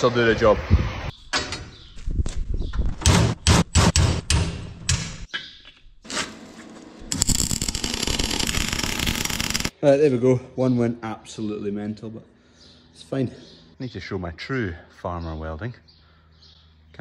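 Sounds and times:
welder arc crackling: 7.0s - 9.7s.

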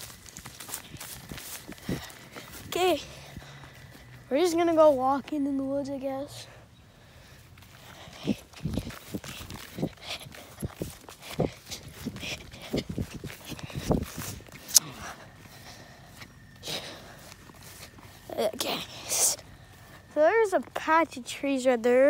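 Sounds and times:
footsteps on ground: 0.0s - 22.0s.

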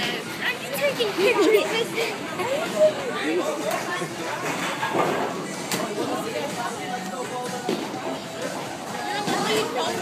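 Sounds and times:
background music: 4.0s - 10.0s.

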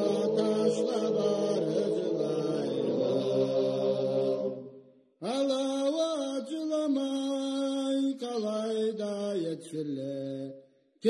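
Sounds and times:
slow chant-like singing: 0.0s - 10.9s.

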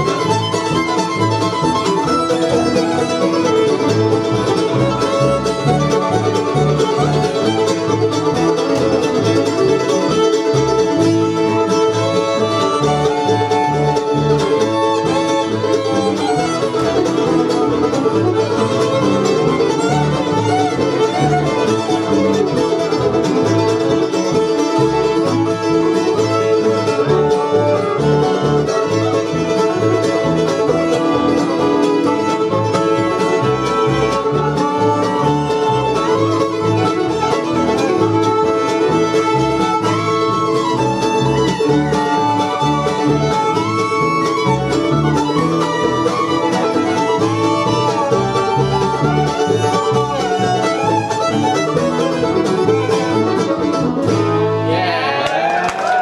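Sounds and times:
flatpicked acoustic guitar: 0.0s - 55.0s
fiddles playing melody: 0.0s - 56.0s
upright bass: 0.0s - 56.0s.

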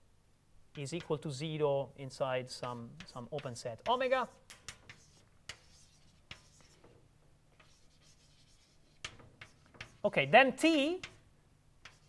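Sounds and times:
chalk taps: 0.7s - 1.4s, 2.4s - 10.2s, 10.8s - 12.0s
chalk scratching on blackboard: 2.4s - 7.0s, 7.6s - 12.0s.

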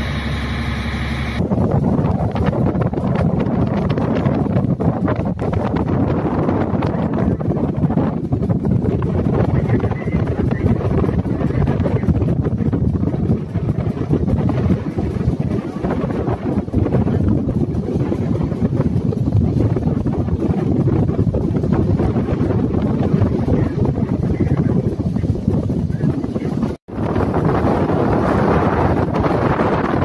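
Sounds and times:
boat engine: 0.0s - 30.0s
wind buffeting microphone: 0.0s - 30.0s.

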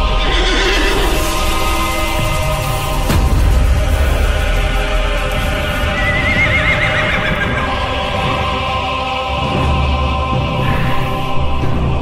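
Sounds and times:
soundtrack music: 0.0s - 12.0s
horse whinnying: 5.9s - 7.7s.

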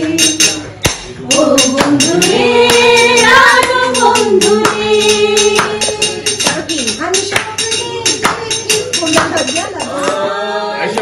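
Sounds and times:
women singing together: 0.0s - 11.0s
hand-claps: 0.8s - 2.9s, 5.5s - 6.6s, 7.3s - 10.3s.

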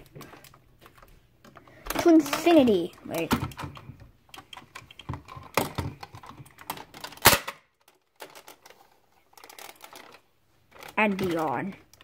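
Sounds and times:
plastic toy clicking and rattling: 1.4s - 12.0s.

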